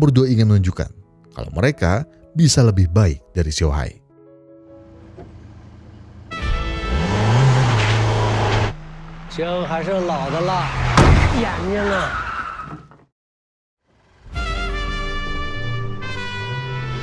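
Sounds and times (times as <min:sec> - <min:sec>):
car driving: 0:04.8 - 0:13.0
voices: 0:09.3 - 0:12.2
sharp knock: 0:11.0 - 0:11.4.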